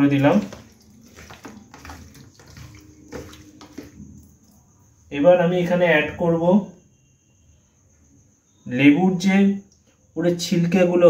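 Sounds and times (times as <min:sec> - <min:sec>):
hand squelching chicken in marinade: 0:00.0 - 0:04.7.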